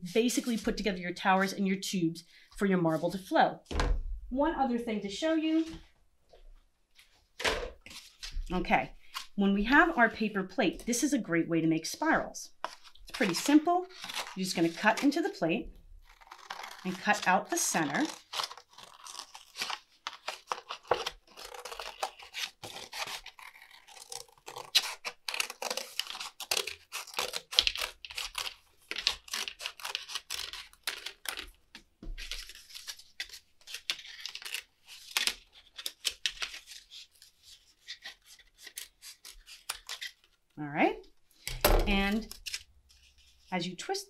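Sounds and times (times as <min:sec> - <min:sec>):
scissors cutting paper plate: 0:12.6 - 0:15.4, 0:16.1 - 0:31.5.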